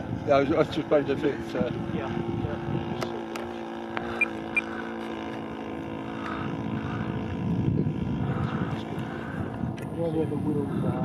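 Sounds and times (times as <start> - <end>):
model airplane engine droning: 0.0 - 11.0.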